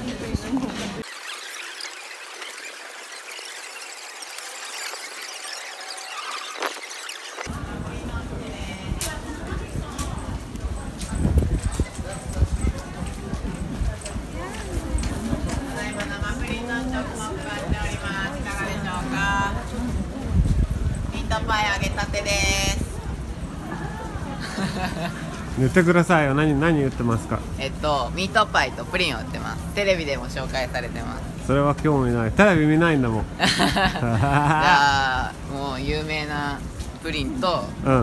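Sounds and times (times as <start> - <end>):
crowd noise: 0.0 - 38.0
shopping street hubbub: 0.0 - 38.0.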